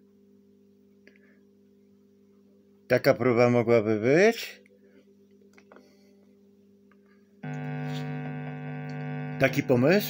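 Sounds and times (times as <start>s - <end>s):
faint amplifier hum: 0.0s - 10.0s
distorted electric guitar ringing: 7.4s - 10.0s.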